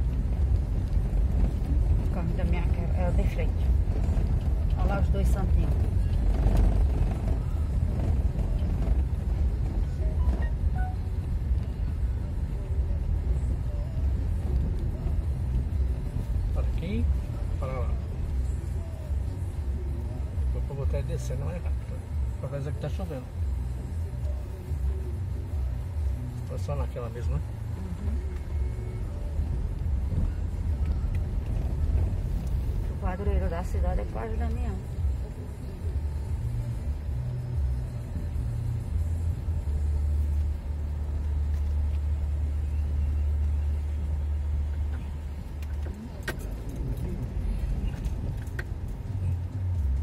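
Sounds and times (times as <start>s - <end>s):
car engine: 0.0s - 50.0s
tyres rumbling on cobblestones: 0.0s - 50.0s.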